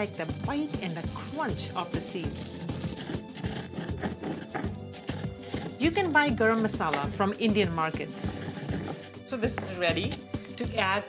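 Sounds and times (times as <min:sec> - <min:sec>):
pestle crushing seeds: 0:00.0 - 0:10.4
background music: 0:00.0 - 0:11.0.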